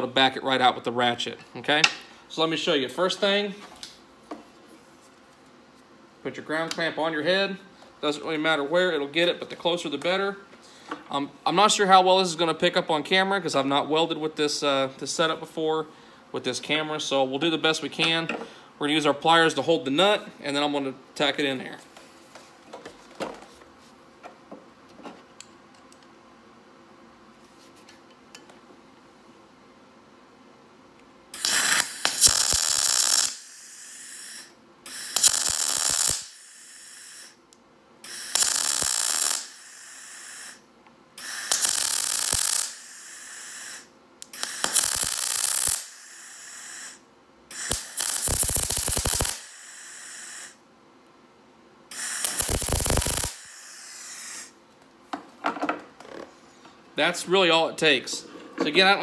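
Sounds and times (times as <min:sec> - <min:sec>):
welder arc crackling: 0:31.4 - 0:37.4, 0:38.0 - 0:40.6, 0:41.2 - 0:50.6, 0:51.9 - 0:54.6.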